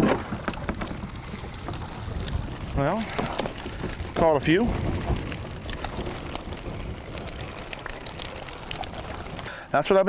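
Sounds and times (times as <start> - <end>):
water pouring and dripping off net: 0.0 - 9.8.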